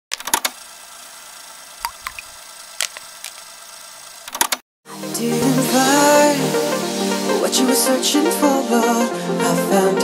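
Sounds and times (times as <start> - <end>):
clicks and crackles: 1.8 - 3.5
steady hiss: 5.0 - 8.9.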